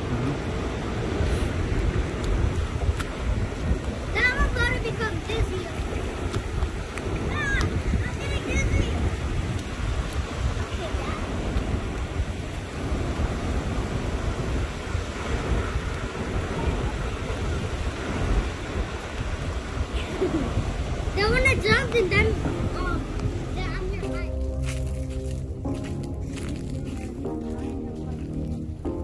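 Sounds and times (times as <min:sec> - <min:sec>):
small waves lapping on sand: 0:00.0 - 0:29.0
wind buffeting microphone: 0:00.0 - 0:29.0.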